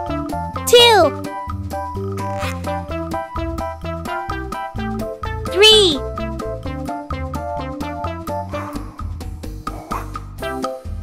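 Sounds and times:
bouncy children's music: 0.0s - 9.2s.

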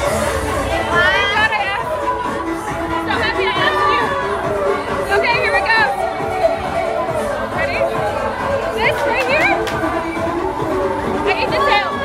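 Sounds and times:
crowd chatter: 0.0s - 12.0s
loud rap music: 0.0s - 12.0s.

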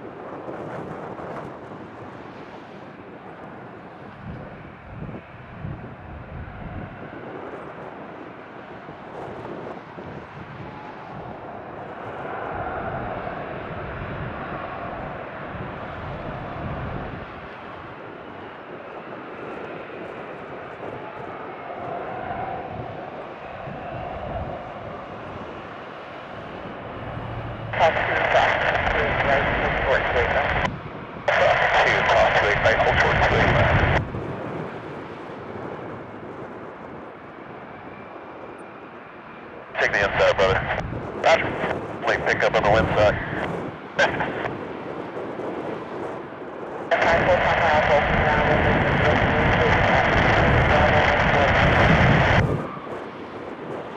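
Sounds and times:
jet engines whining: 9.3s - 53.9s
radio transmission bursts: 27.0s - 30.7s, 31.3s - 34.0s, 39.8s - 44.6s, 46.9s - 52.5s.

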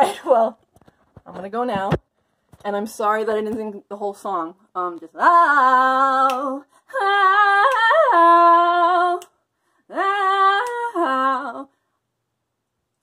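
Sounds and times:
woman singing wordlessly: 2.7s - 11.8s.

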